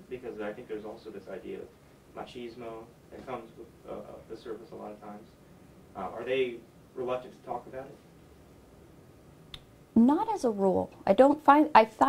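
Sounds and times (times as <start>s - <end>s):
woman's voice: 10.0s - 12.0s.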